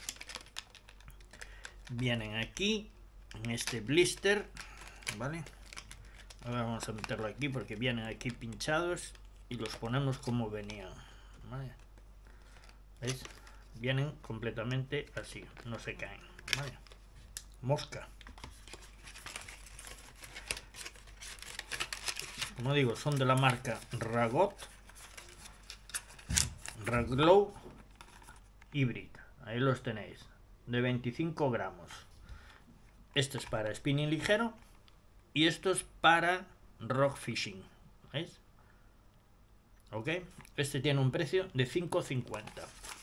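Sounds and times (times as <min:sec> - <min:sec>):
plastic blister pack crinkling: 0:00.0 - 0:27.2, 0:42.0 - 0:43.0.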